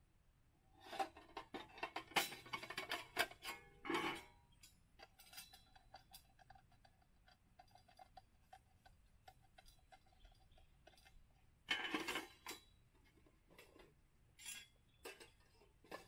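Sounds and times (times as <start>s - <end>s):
metal stove parts clattering: 0.8s - 6.6s, 9.4s - 16.0s.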